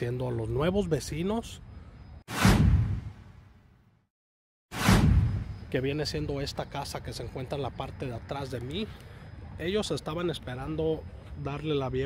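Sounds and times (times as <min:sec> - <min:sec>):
whoosh: 0:02.3 - 0:03.4, 0:04.7 - 0:05.7.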